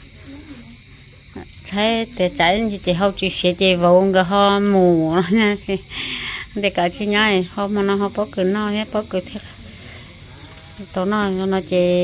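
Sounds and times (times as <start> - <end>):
insect chorus: 0.0 - 12.0.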